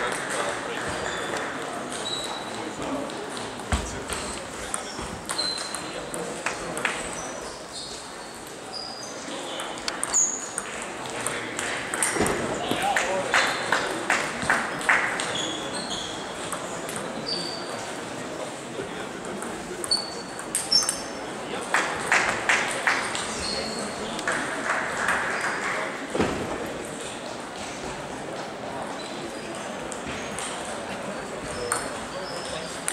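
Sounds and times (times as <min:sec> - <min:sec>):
hubbub of a hall: 0:00.0 - 0:32.9
murmur of voices: 0:00.0 - 0:32.9
table tennis balls clicking: 0:09.6 - 0:12.4, 0:19.2 - 0:21.2, 0:31.7 - 0:32.9.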